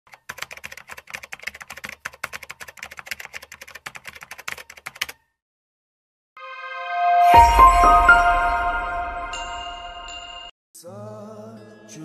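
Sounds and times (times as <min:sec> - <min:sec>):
rapid irregular clicking: 0:00.1 - 0:05.2.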